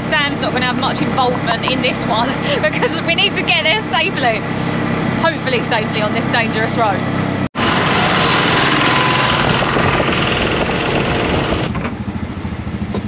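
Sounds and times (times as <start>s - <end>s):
road and wind noise: 0.0s - 13.0s
small engine running: 0.0s - 13.0s.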